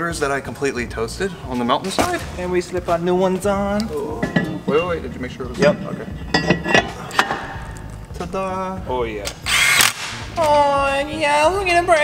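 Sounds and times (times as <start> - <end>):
metal clinks of brake rotor: 4.1 - 7.7.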